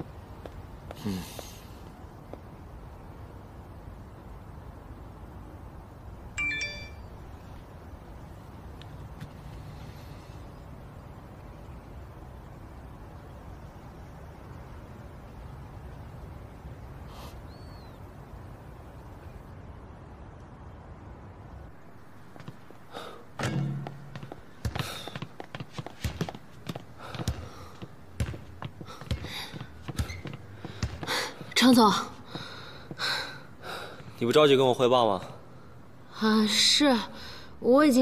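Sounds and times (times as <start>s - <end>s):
low background hum: 0.0s - 38.0s
two-note phone chime: 6.4s - 7.1s
basketball bouncing on wooden floor: 23.4s - 31.6s.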